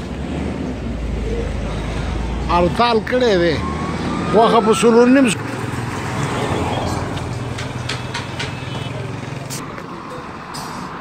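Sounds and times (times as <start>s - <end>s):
street noise: 0.0s - 11.0s
vehicle engine humming: 0.0s - 11.0s.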